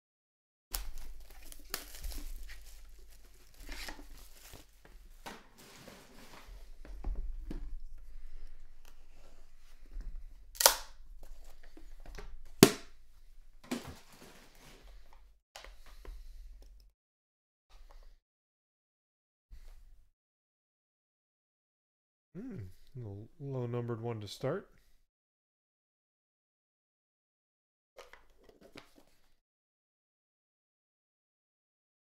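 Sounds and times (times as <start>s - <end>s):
plastic wrap crinkling and tearing: 0.7s - 6.4s
plastic snaps: 10.6s - 11.3s, 12.1s - 13.0s.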